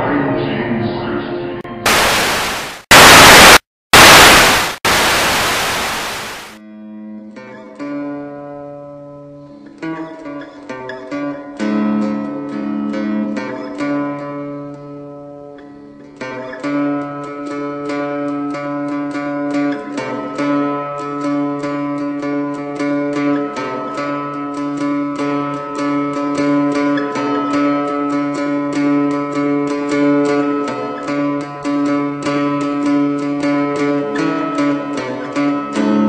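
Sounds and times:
loud static hiss: 1.9s - 6.6s
cigar box guitar playing: 7.4s - 36.0s.

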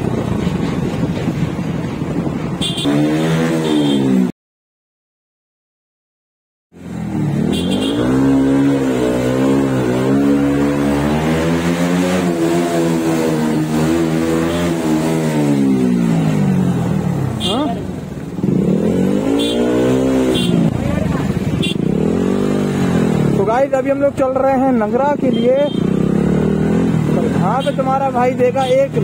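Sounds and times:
motorcycle engine revving: 0.0s - 4.3s, 6.8s - 29.0s.

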